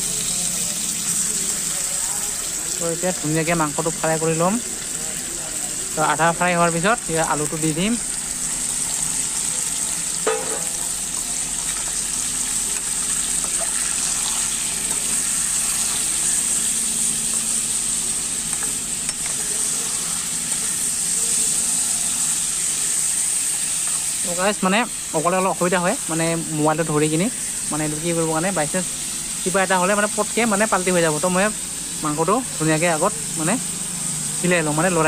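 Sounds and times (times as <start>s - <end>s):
meat sizzling in a pan: 0.0s - 35.0s
metal spatula stirring: 12.7s - 17.7s, 18.4s - 20.9s.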